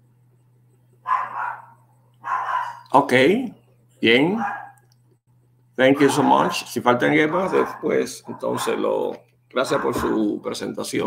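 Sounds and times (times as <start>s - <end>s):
low electrical hum: 0.0s - 11.0s
dog barking: 1.1s - 2.9s, 4.4s - 4.8s, 5.9s - 8.8s, 9.6s - 10.2s.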